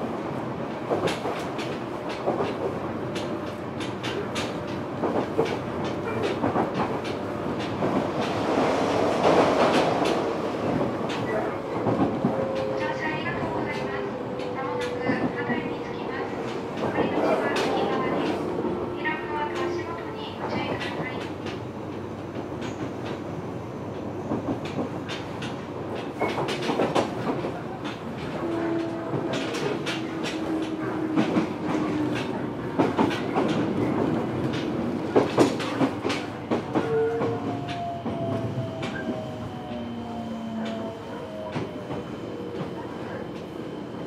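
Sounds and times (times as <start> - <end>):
train running rumble: 0.0 - 39.8.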